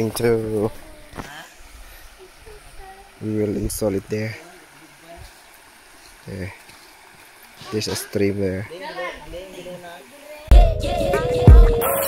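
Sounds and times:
river water flowing over stones: 0.0s - 10.5s.

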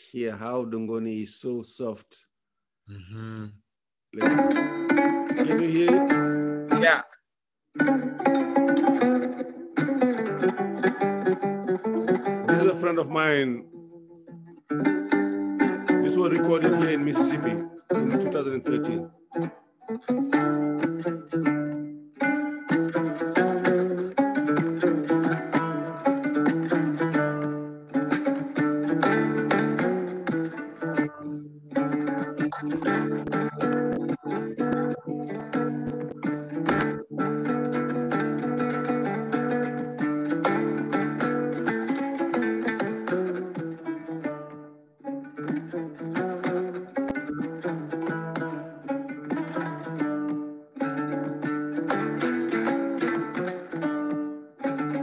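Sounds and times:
plucked lute melody: 4.2s - 7.0s, 7.8s - 55.0s.

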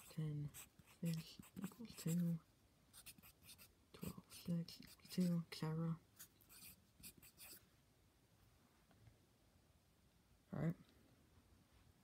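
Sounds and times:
pencil scratching on paper: 0.0s - 5.5s, 6.2s - 7.6s.

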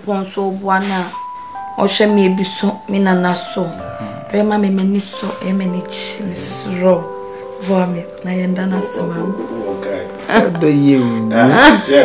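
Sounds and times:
woman speaking: 0.0s - 1.2s, 1.8s - 9.5s
background music: 0.0s - 12.0s.

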